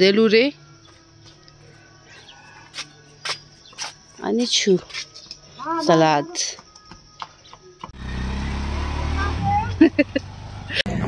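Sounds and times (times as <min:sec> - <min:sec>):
voices: 0:08.9 - 0:11.0.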